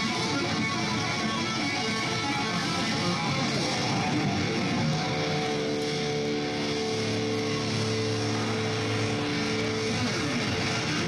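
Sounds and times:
electric guitar sustained chord: 0:00.0 - 0:11.0
guitar note sliding down: 0:00.0 - 0:11.0.

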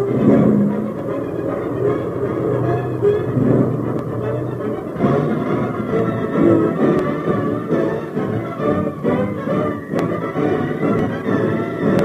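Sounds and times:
orchestral film music: 0:00.0 - 0:12.0
propeller plane engines droning: 0:00.0 - 0:12.0.

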